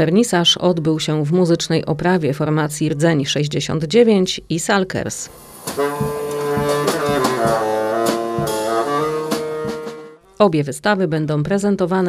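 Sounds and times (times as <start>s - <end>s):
live band playing: 5.4s - 10.2s.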